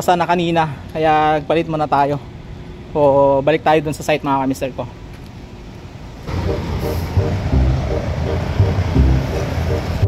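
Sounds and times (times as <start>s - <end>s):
street traffic: 0.0s - 10.0s
heavy vehicle engine rumbling: 5.0s - 10.0s.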